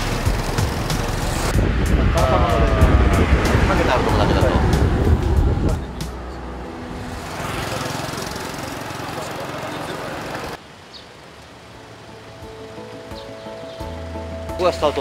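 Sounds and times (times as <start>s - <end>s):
road noise: 0.0s - 15.0s
wind: 0.0s - 15.0s
soft background music: 11.6s - 15.0s.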